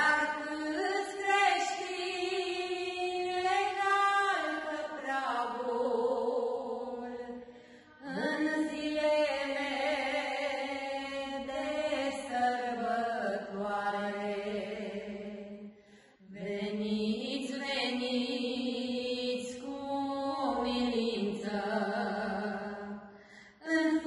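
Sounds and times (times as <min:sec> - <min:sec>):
slow chant-like hymn singing: 0:00.0 - 0:24.0.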